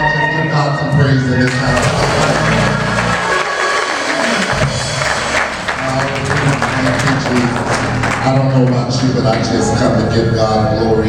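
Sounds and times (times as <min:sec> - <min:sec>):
church worship music with drums: 0:00.0 - 0:11.0
hands clapping: 0:01.4 - 0:09.5.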